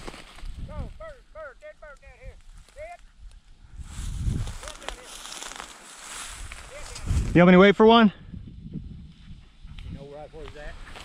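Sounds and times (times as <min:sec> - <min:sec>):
footsteps through dry grass: 0:00.0 - 0:00.7, 0:02.3 - 0:07.6, 0:08.8 - 0:11.0.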